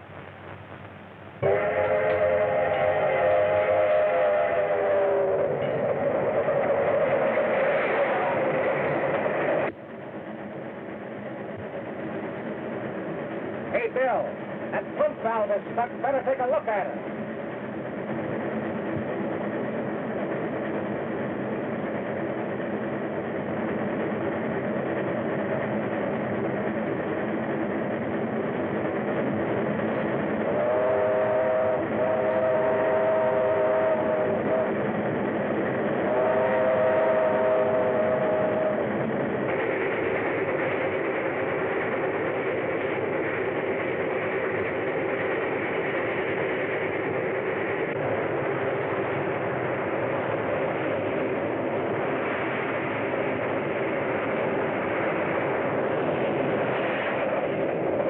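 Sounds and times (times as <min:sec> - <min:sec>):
steam locomotive running: 0:00.0 - 0:58.0
steam whistle chord: 0:01.4 - 0:07.2, 0:30.5 - 0:34.7, 0:36.0 - 0:38.8.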